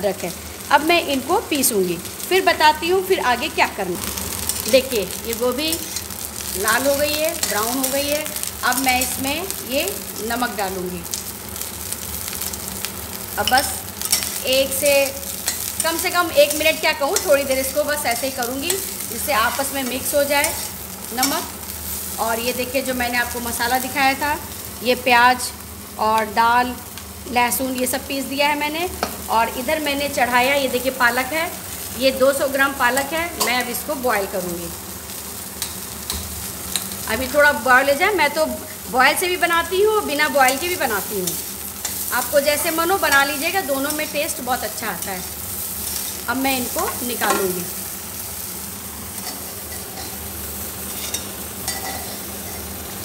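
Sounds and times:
cauliflower sizzling in hot oil: 0:00.0 - 0:53.0.

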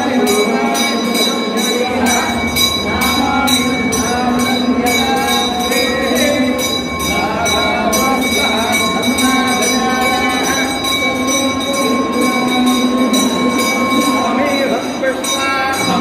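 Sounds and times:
men chanting: 0:00.0 - 0:16.0
temple bells ringing: 0:00.0 - 0:16.0.

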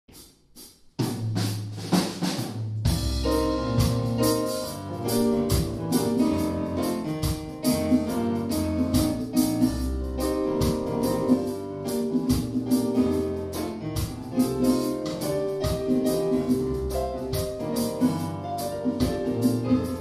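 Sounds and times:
percussion: 0:00.1 - 0:20.0
low bass: 0:02.8 - 0:11.4
piano and keyboard chords: 0:02.9 - 0:20.0.

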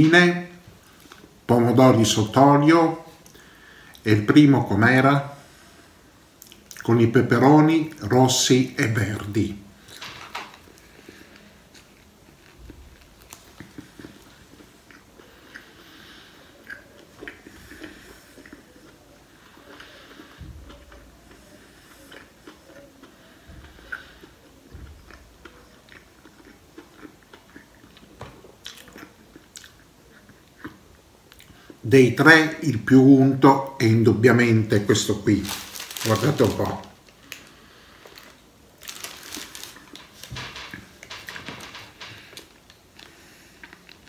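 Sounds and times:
person chewing sandwich: 0:09.8 - 0:31.8, 0:35.1 - 0:41.2, 0:42.0 - 0:44.0.

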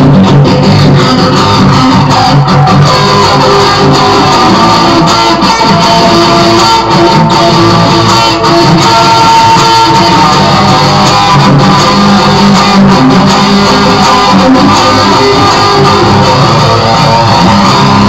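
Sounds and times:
loud electric guitar playing: 0:00.0 - 0:18.0.

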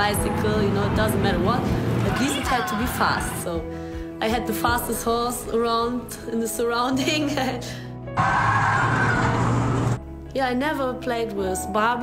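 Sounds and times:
road noise: 0:00.0 - 0:02.8, 0:08.2 - 0:10.0.

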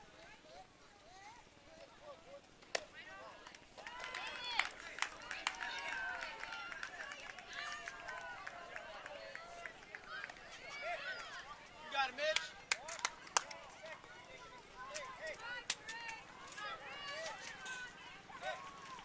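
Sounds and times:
crowd shouting and cheering: 0:03.0 - 0:19.0.

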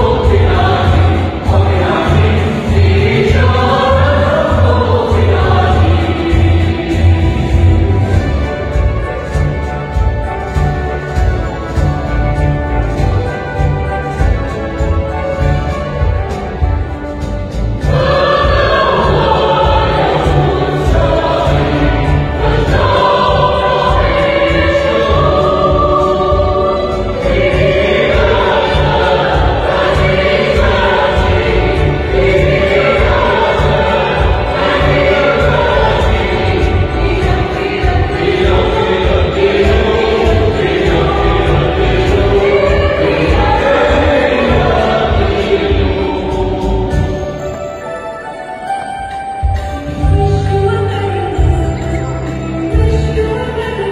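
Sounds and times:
mixed choir singing a hymn: 0:00.0 - 0:16.9, 0:17.5 - 0:48.4
accompaniment with low beat: 0:00.0 - 0:47.5.

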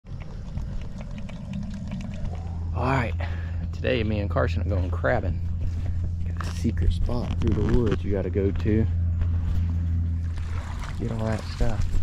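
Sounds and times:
crabs clicking and scratching: 0:00.1 - 0:02.8
low rumble: 0:00.1 - 0:12.0.

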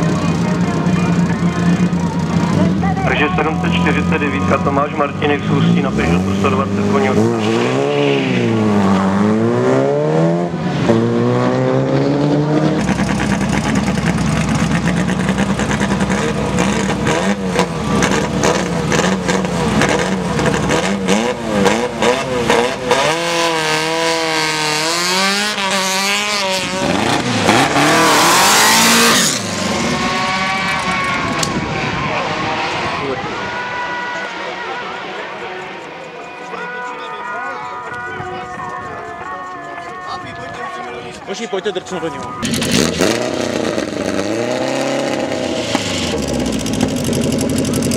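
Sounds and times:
formula car engine running: 0:00.0 - 0:07.9, 0:08.5 - 0:36.8, 0:41.2 - 0:47.9
race car engine revving: 0:00.0 - 0:38.0, 0:41.0 - 0:47.9
saloon car engine revving: 0:00.0 - 0:38.0, 0:40.7 - 0:47.9.

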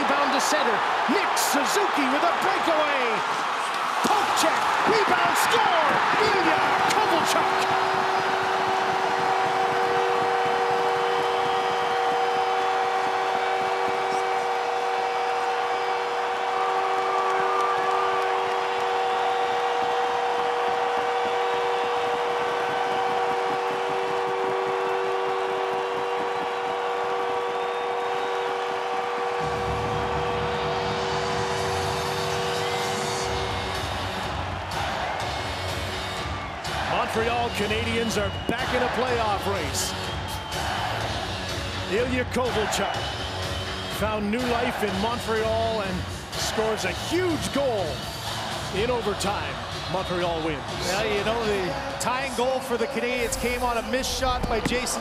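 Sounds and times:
crowd cheering: 0:00.0 - 0:55.0
goal horn blast: 0:05.8 - 0:35.0.

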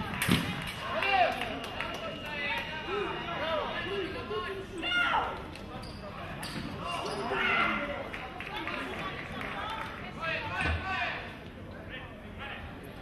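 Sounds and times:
voices calling and chattering: 0:00.0 - 0:13.0.

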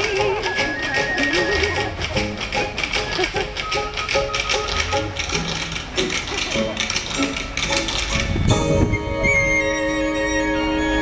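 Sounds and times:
tap dance steps clattering: 0:00.0 - 0:08.6
stage music: 0:00.0 - 0:11.0.

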